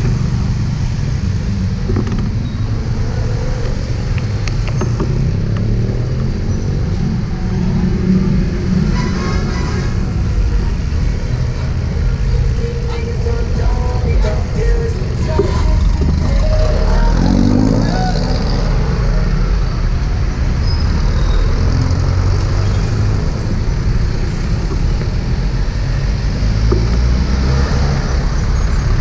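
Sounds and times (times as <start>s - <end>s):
city street traffic rumble: 0.0s - 29.0s.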